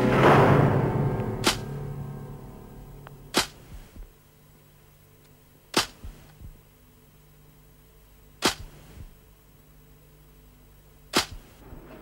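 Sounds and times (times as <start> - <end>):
sharp crack: 0.0 - 4.0, 5.7 - 6.3, 8.4 - 9.0, 11.1 - 11.6
faint low steady hum: 0.0 - 12.0.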